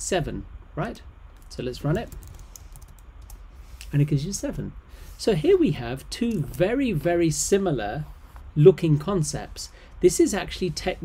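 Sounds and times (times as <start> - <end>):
keyboard keys tapping: 1.4 - 3.4.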